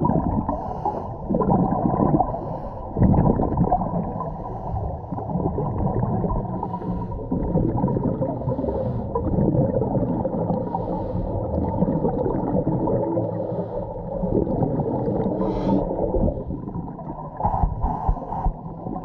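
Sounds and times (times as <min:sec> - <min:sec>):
underwater rumbling and gurgling: 0:00.0 - 0:19.0.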